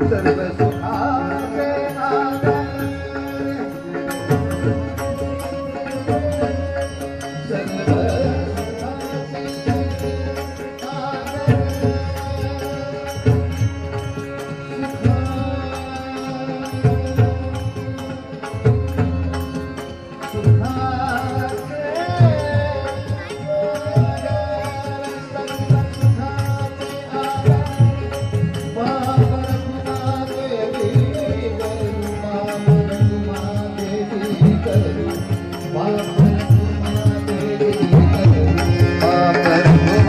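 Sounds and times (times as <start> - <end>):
sustained melodic accompaniment: 0.0 - 40.0.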